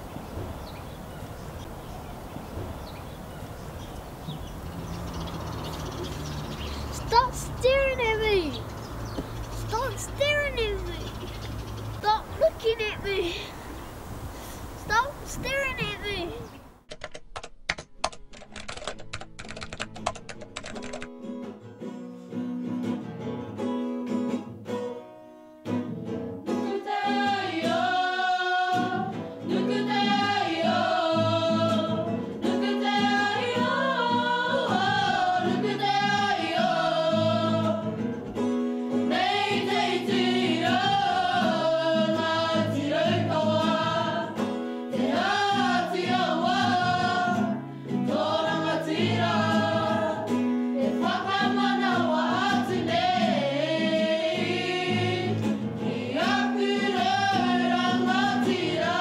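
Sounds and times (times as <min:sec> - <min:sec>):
group singing: 0:26.6 - 0:38.2, 0:39.0 - 0:59.0.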